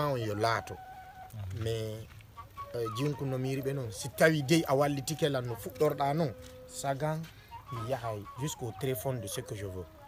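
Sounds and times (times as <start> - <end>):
man speaking: 0.0 - 0.8, 1.4 - 2.1, 2.7 - 9.9.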